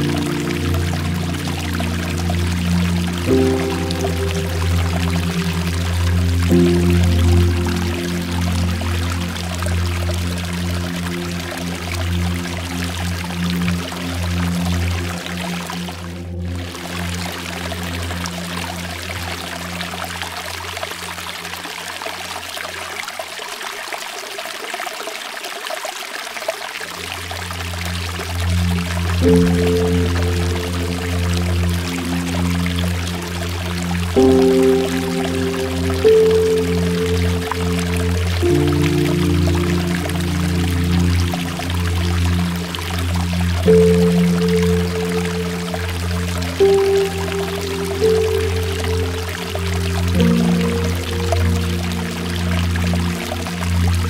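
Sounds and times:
slow sustained music chords: 0.0 - 23.2, 26.7 - 54.0
water pouring over rock: 0.0 - 54.0.

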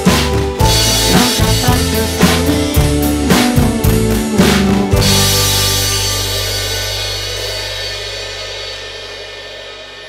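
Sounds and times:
low held chord: 5.0 - 10.0.

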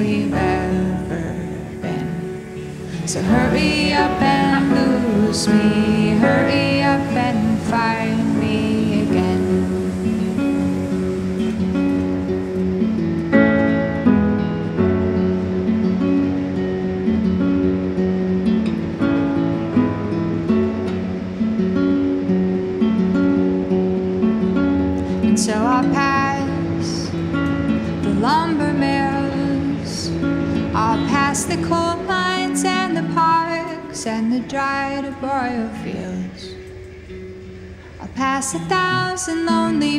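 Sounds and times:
person singing: 0.0 - 10.8, 25.3 - 27.2, 28.0 - 36.6, 38.0 - 39.9
acoustic guitar strumming: 0.0 - 39.9.

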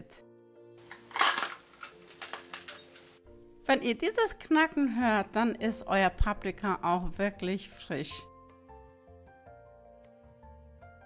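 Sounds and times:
soft background music: 0.0 - 11.0
pepper cracking as cut: 0.9 - 3.2.

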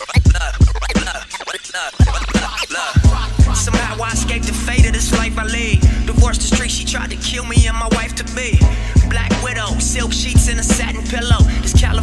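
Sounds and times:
hip-hop track: 0.0 - 12.0.

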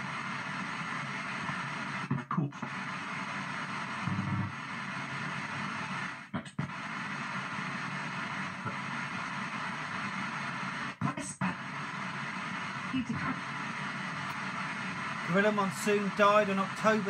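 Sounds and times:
fragments of broadcast audio: 0.0 - 17.0
radio static: 0.0 - 17.0.

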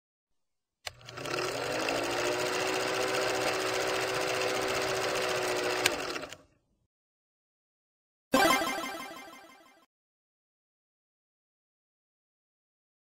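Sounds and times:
film projector clattering: 0.9 - 6.4.

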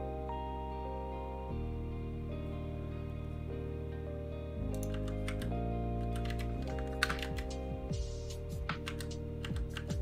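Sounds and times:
background music with held notes: 0.0 - 10.0
typing on computer keyboard: 4.7 - 7.6, 8.7 - 10.0.

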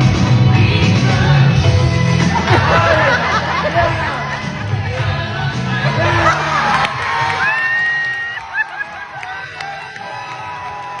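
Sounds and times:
dance music: 0.0 - 11.0
audience cheering: 6.0 - 11.0
people clapping: 6.2 - 11.0.

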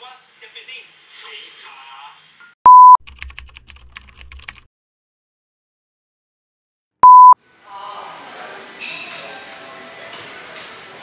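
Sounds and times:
loud short beep: 2.7 - 3.0, 7.0 - 7.4
keyboard typing clicks: 2.7 - 4.7.

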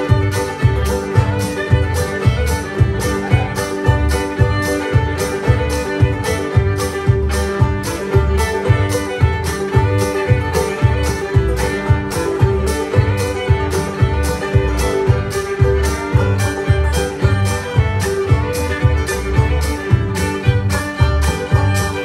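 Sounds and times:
fiddle: 0.0 - 22.0
string band playing: 0.0 - 22.0.

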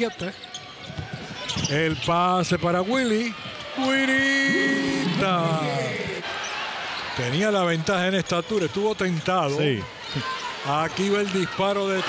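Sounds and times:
arena crowd noise: 0.0 - 12.0
man commentating: 2.0 - 6.2.

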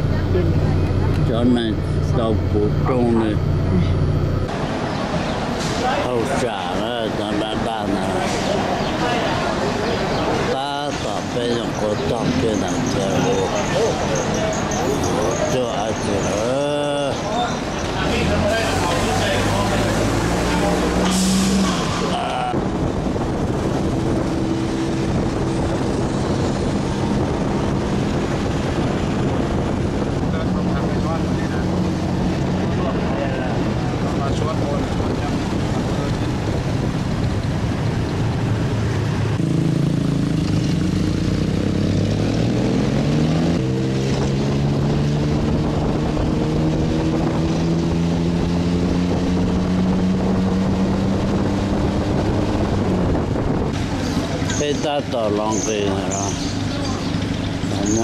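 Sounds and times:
wind on microphone: 21.4 - 55.0.

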